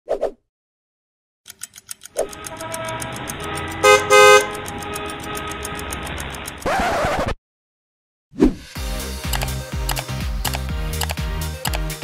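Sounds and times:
car horn honking: 2.2s - 6.1s.

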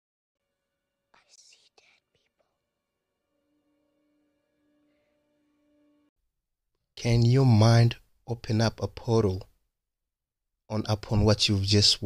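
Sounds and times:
boy whispering: 1.1s - 2.6s.

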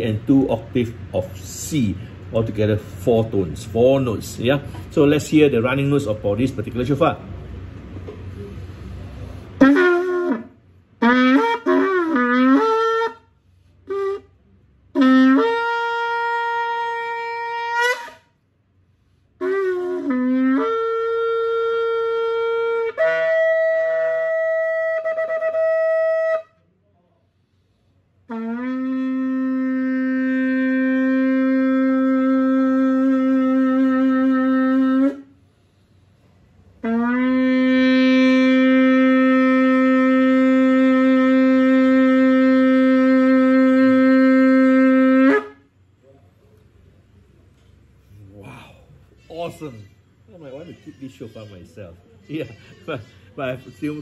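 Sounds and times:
horn blasts: 9.4s - 18.4s, 36.8s - 45.7s.

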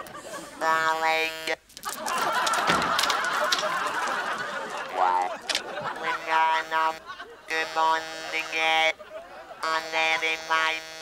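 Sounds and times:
bead curtain rattling: 1.7s - 4.2s.

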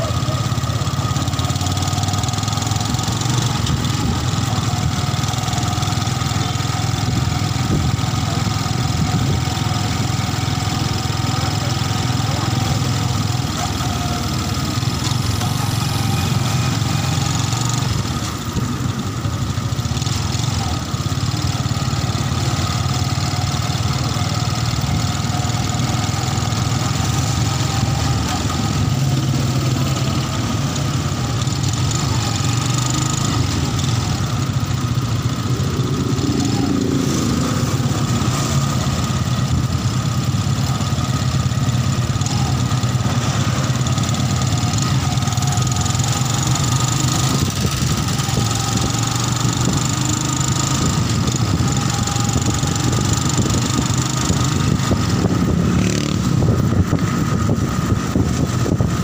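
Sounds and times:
road noise: 0.0s - 59.0s
vehicle engine running: 0.0s - 59.0s
wind noise: 50.8s - 59.0s.

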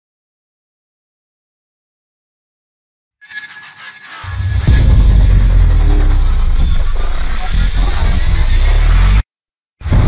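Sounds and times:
deep heavy bass rumble: 4.3s - 9.2s.

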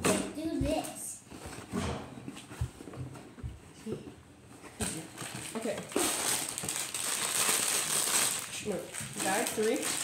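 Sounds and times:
plastic bags crinkling: 5.1s - 10.0s.

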